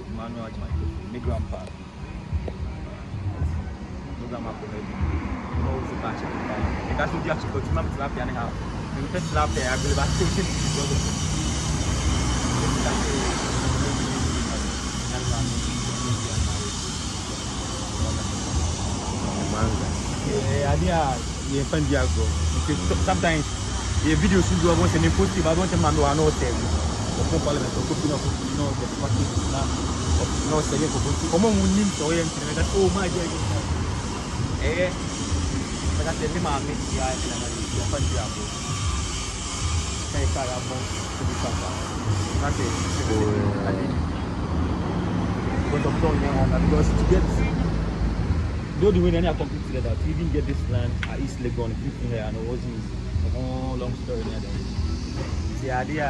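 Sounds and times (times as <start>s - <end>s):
faint voices: 0.0s - 56.0s
outdoor rumble and hiss: 0.0s - 56.0s.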